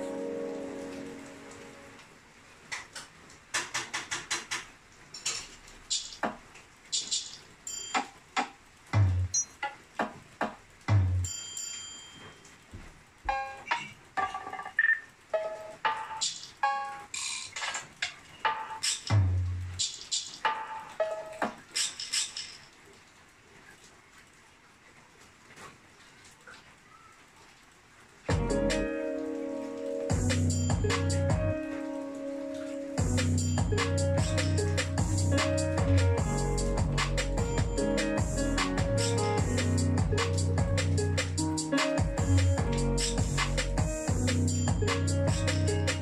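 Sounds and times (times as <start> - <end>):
deep bass kick hits: 28.3 - 28.7, 30.1 - 31.6, 33.0 - 41.0, 42.0 - 45.7
bell-like melody notes: 28.3 - 46.0
hi-hat rolls: 33.0 - 46.0.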